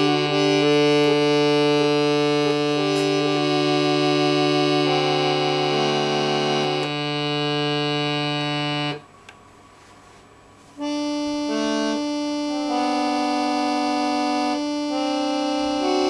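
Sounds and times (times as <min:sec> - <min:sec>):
reedy organ melody: 0:00.0 - 0:09.1, 0:10.8 - 0:16.0.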